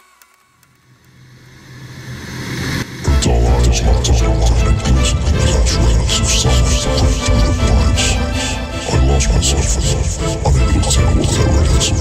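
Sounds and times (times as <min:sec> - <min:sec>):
low synth drone: 0:00.8 - 0:12.0.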